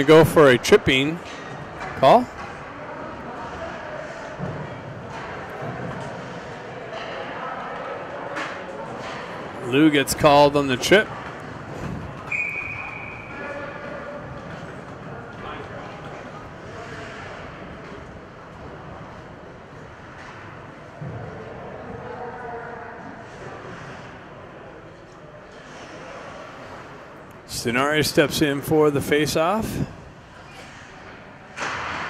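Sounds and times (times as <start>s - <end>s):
low hum of hall: 0.0s - 32.0s.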